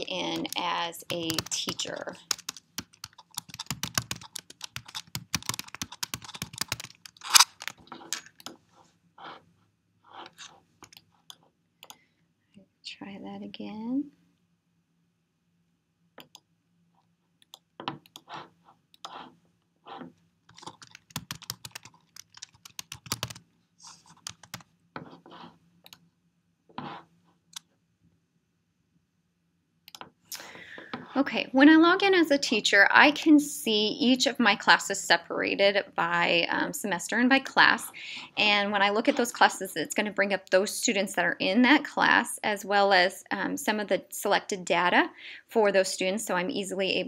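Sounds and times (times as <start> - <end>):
computer keyboard typing: 0.2 - 8.6, 20.5 - 24.7.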